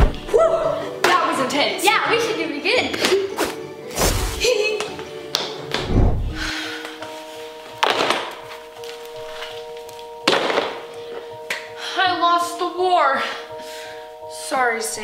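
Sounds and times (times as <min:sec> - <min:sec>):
background music with held notes: 0:00.0 - 0:15.0
heavy thuds: 0:05.8 - 0:06.5.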